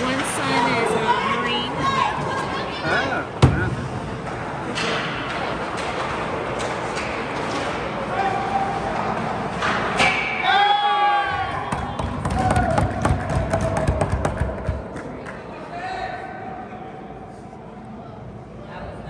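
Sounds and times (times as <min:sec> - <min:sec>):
spectators talking and calling out: 0:00.0 - 0:05.9.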